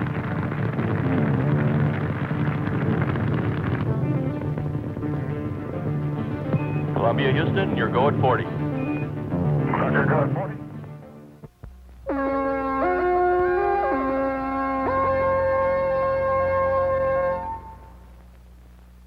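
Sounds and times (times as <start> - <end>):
film music: 0.0 - 11.4, 12.0 - 18.1
faint low hum: 0.0 - 19.0
held chord with sliding notes: 12.1 - 18.0.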